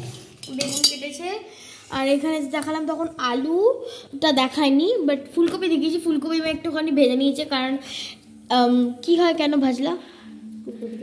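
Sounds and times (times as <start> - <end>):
metallic clink of kitchenware: 0.4 - 1.1.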